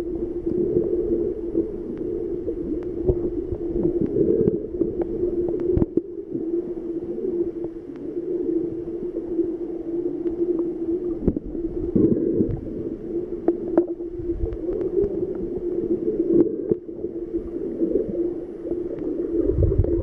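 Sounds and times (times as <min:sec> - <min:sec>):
rushes of water: 0:00.0 - 0:20.0
underwater low hum: 0:00.0 - 0:20.0.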